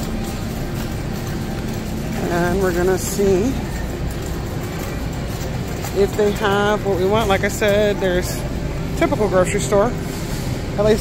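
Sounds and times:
shopping cart wheels rolling: 0:00.0 - 0:11.0.

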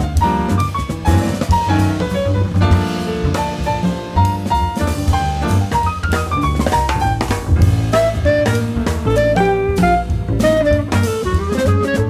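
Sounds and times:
drum kit: 0:00.0 - 0:12.0
piano lines: 0:00.0 - 0:12.0
walking double bass: 0:00.0 - 0:12.0.

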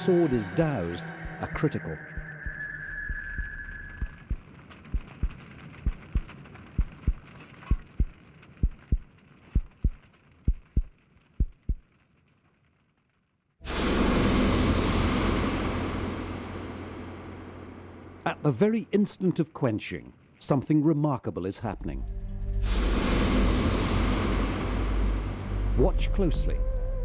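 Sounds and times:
slow low paired thumps: 0:01.2 - 0:01.5, 0:02.2 - 0:11.8
hot blade hissing in water: 0:22.6 - 0:25.5.

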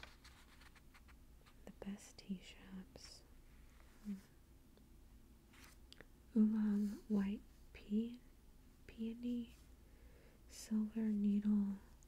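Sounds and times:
woman whispering: 0:01.7 - 0:03.3, 0:04.0 - 0:04.3, 0:06.4 - 0:08.3, 0:08.9 - 0:09.6, 0:10.5 - 0:12.0
woman humming softly: 0:04.0 - 0:04.3.

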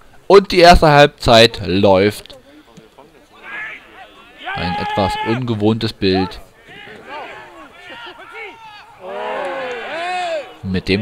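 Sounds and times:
voices shouting and calling: 0:02.2 - 0:11.0.

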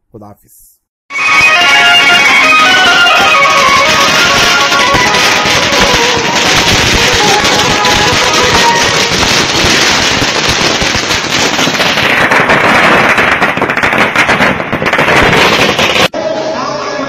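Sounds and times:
music playing: 0:01.1 - 0:09.1, 0:16.1 - 0:17.0
firecrackers cracking: 0:01.2 - 0:16.2.

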